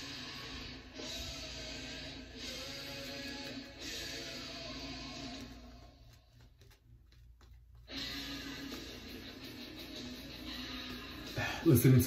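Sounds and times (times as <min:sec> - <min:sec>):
faint rock music: 0:00.0 - 0:12.0.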